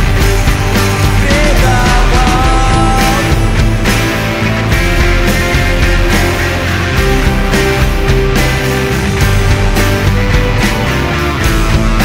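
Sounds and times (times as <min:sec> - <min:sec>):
rock band playing instrumental: 0:00.0 - 0:12.0.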